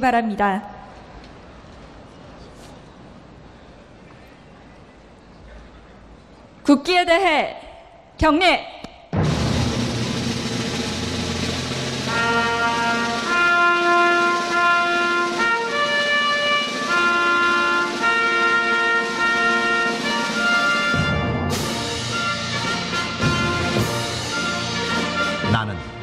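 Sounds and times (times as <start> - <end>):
timpani roll: 9.1 - 26.0
orchestral brass chords: 9.2 - 26.0.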